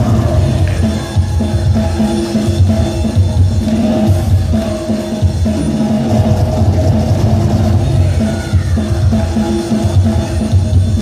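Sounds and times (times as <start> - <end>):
loud hip-hop music: 0.0 - 11.0.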